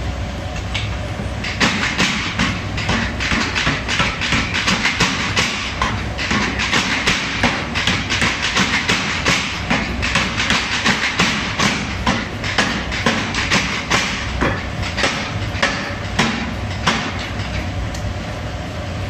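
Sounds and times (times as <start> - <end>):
machine low running hum: 0.0 - 19.0
power hammer pounding hot steel: 0.7 - 17.8.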